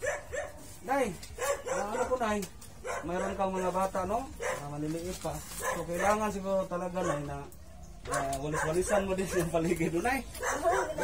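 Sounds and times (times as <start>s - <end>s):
puppy barking: 0.0s - 0.7s, 1.3s - 4.8s, 5.5s - 9.6s, 10.4s - 11.0s
voices talking: 0.9s - 11.0s.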